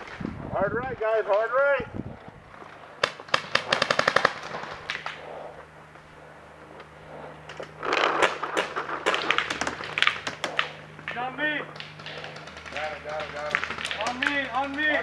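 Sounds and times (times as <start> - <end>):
paintball markers firing: 3.0 - 5.2, 7.8 - 15.0.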